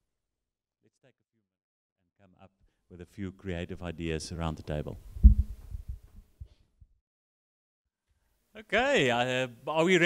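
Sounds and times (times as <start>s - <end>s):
microphone handling thumps: 5.0s - 6.6s.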